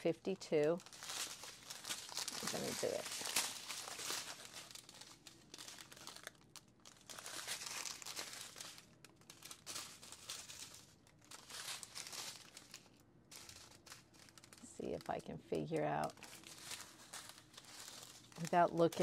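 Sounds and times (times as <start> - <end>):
plastic bags crinkling: 0.0 - 19.0.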